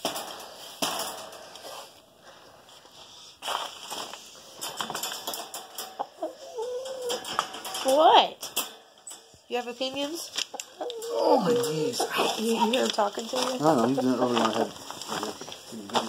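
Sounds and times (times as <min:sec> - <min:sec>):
wire crate clicks and rattles: 0:00.0 - 0:02.0, 0:03.5 - 0:12.0
bedding rustling: 0:00.0 - 0:10.5, 0:11.2 - 0:16.0
rooster low vocalisation: 0:10.8 - 0:12.4.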